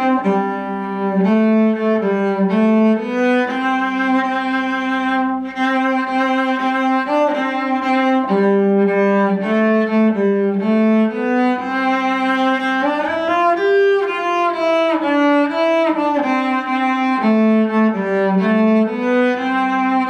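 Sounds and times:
solo cello bowed melody: 0:00.0 - 0:20.0.

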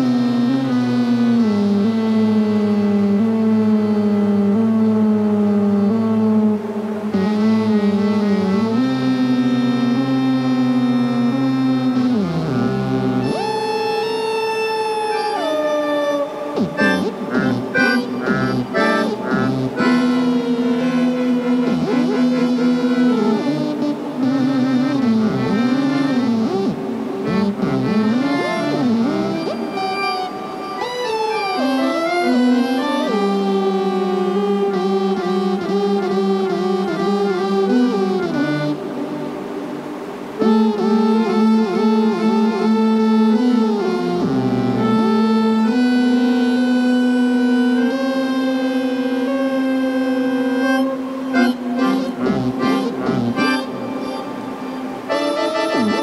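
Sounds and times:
melodica playing through effects: 0:07.1 - 0:56.0.

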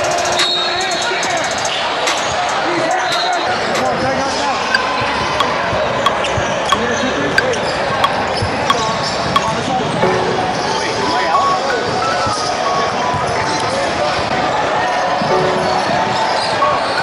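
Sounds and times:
chatter of many voices: 0:00.0 - 0:17.0.

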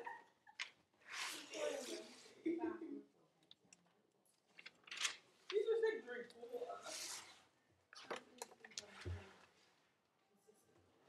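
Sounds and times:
paper pages rustling: 0:04.5 - 0:05.2.

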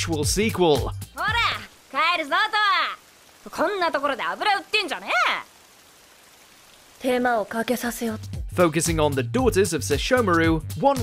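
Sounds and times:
faint background hiss: 0:00.3 - 0:08.2.

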